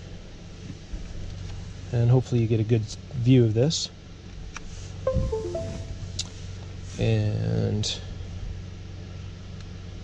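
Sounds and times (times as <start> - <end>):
computer chime: 5.1 - 6.4.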